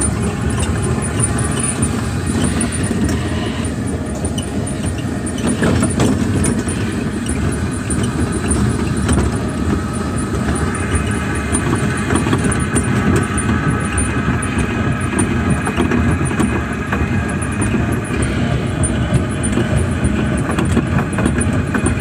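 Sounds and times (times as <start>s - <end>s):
ride train rumbling on track: 0.0s - 22.0s.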